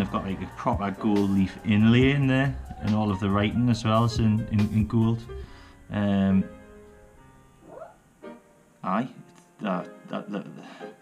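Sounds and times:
quiet guitar music: 0:00.0 - 0:11.0.

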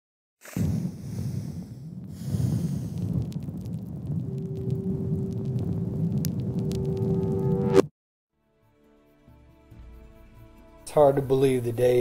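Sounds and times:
crackles: 0:00.4 - 0:07.9
low rumble: 0:00.6 - 0:07.9
held tone: 0:04.2 - 0:07.9.

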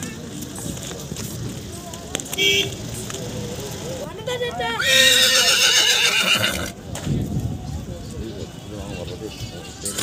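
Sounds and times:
horse whinnying: 0:04.8 - 0:06.8.

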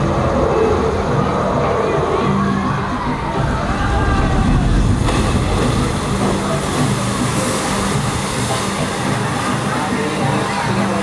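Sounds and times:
rush of churning water: 0:00.0 - 0:11.0
low hum: 0:02.1 - 0:08.7.

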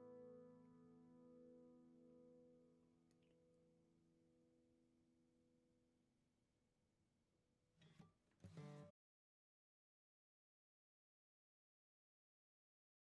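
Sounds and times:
faint guitar and banjo instrumental: 0:00.0 - 0:03.8, 0:07.8 - 0:08.9.

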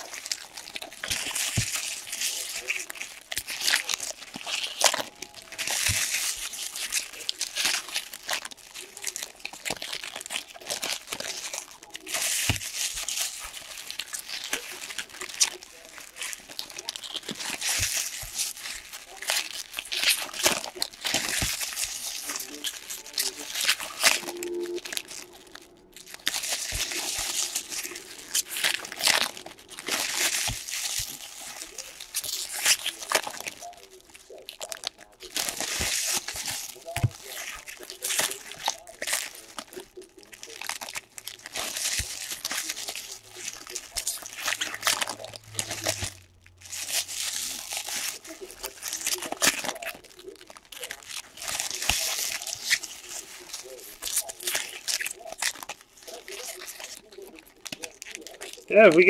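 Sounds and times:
foil wrappers tearing and crinkling: 0:00.0 - 0:59.0.

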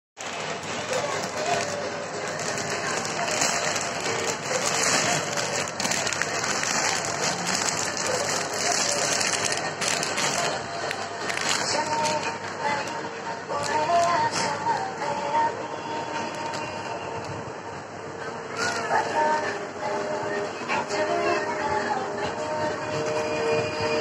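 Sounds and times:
plastic packaging crinkling: 0:00.2 - 0:15.2.

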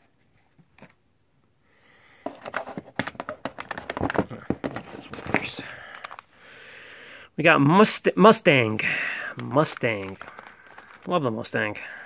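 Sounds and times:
cardboard boxes knocking and rustling: 0:02.3 - 0:05.6.

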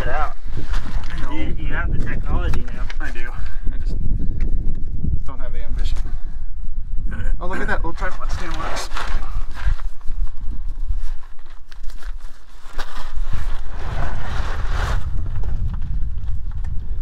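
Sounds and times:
steady low rumble: 0:00.0 - 0:17.0
rustling scrape: 0:00.1 - 0:01.7, 0:08.0 - 0:16.6.

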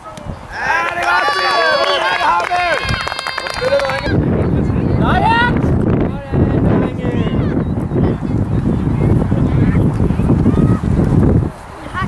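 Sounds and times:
children shouting and cheering: 0:00.5 - 0:04.3, 0:05.0 - 0:05.6, 0:09.3 - 0:11.1
wind rumbling on microphone: 0:02.5 - 0:12.0.

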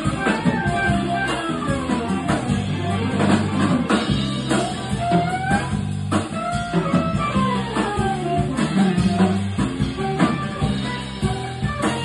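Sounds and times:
drums: 0:00.0 - 0:12.0
electric bass: 0:00.0 - 0:12.0
electric guitar melody: 0:00.0 - 0:12.0.

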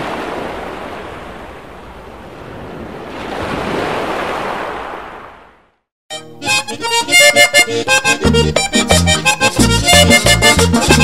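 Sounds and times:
ocean waves: 0:00.0 - 0:05.7.

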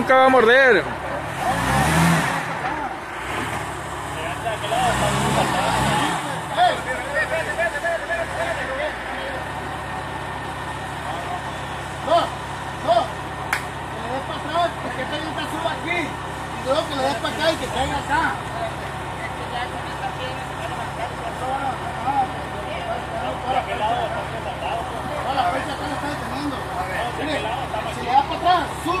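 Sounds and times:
off-road vehicle engine revving: 0:00.0 - 0:29.0
scattered voices: 0:04.1 - 0:29.0.

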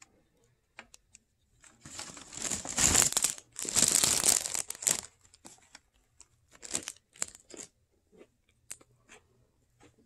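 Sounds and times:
plastic wrapper crinkling: 0:01.8 - 0:07.7.

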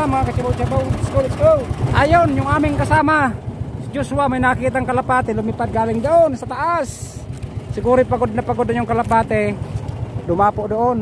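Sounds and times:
small boat engine running: 0:00.0 - 0:11.0.

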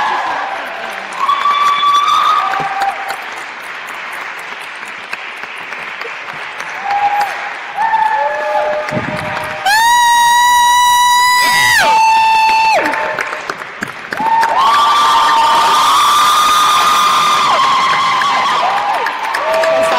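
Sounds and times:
audience whooping and cheering: 0:00.0 - 0:03.5, 0:06.0 - 0:19.9
light applause: 0:00.0 - 0:19.9.

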